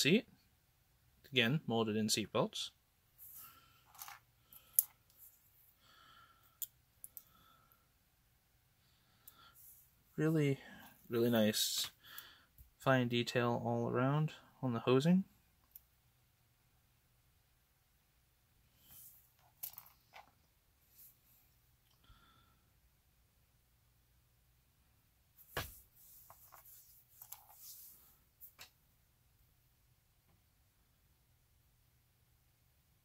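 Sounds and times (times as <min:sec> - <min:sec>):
soft handling rustles: 0:25.4 - 0:28.8.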